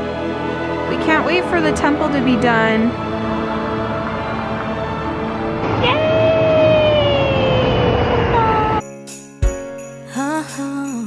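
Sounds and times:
long held note sliding down: 3.4s - 8.8s.

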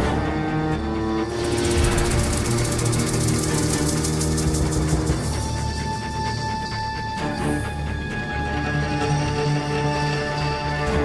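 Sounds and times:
rattling percussion roll: 1.2s - 5.8s.

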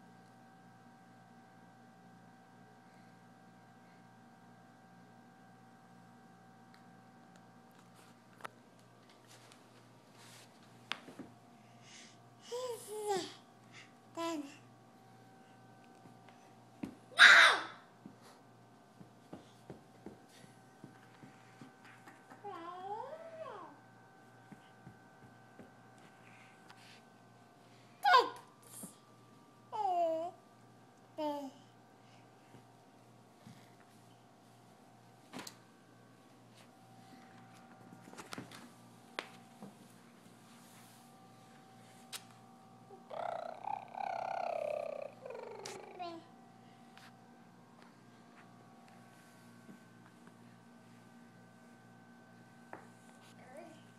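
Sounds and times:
toddler shrieking: 17.2s - 17.8s
toddler singing: 43.0s - 46.2s.

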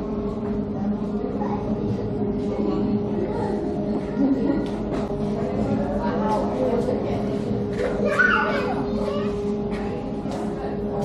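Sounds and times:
chatter in indoor hall: 0.0s - 11.0s
steady low hum: 0.0s - 11.0s
child calling out: 8.1s - 8.8s.

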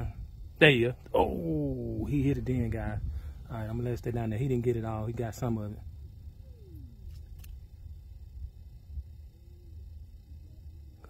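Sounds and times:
low wind rumble on microphone: 0.0s - 11.0s
faint clicks: 7.0s - 7.7s.

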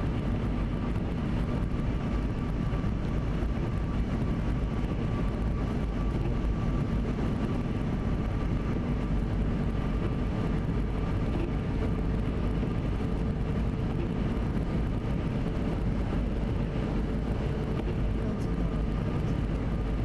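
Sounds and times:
car engine hum: 0.0s - 20.0s
tyre roar on wet road: 0.0s - 20.0s.

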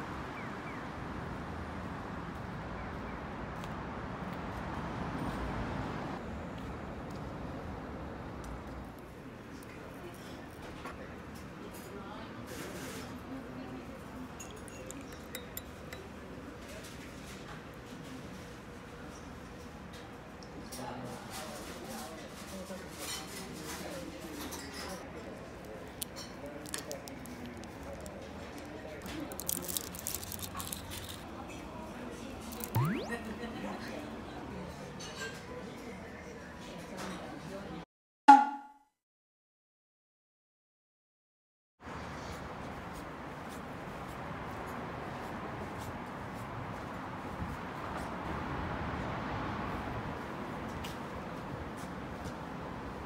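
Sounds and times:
cutlery clicking on plate: 14.4s - 16.2s
rising sweep sound effect: 32.6s - 33.2s.

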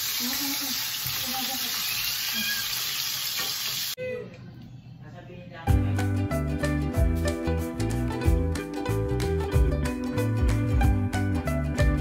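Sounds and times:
sausages sizzling in a pan: 0.0s - 4.0s
background music: 5.7s - 12.0s.

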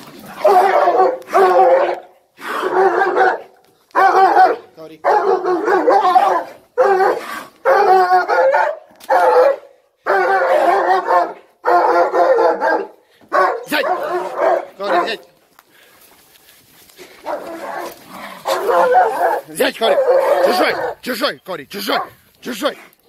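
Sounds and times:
dog barking and snarling: 0.0s - 15.4s, 17.0s - 21.2s, 21.8s - 23.0s.

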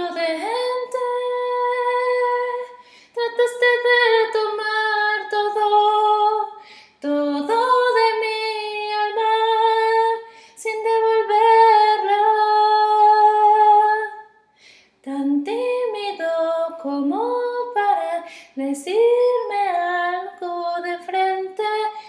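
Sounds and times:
woman singing slow melody: 0.0s - 14.3s, 15.0s - 22.0s
singer breathing: 2.8s - 3.2s, 6.6s - 7.0s, 10.3s - 10.6s, 14.4s - 15.0s, 18.3s - 18.6s.

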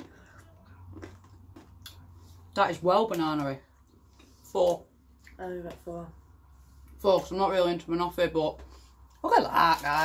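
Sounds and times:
faint chewing: 0.0s - 5.9s.

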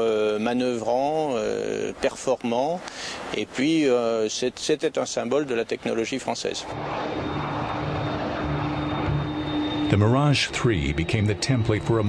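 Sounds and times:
faint jet engine whine: 5.5s - 12.0s
jet engines rushing: 6.4s - 12.0s.

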